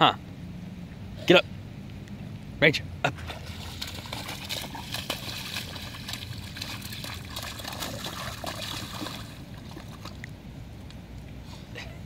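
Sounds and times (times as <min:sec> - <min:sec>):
dog splashing in puddle: 0:03.1 - 0:10.4
water sloshing and splattering: 0:03.1 - 0:10.4.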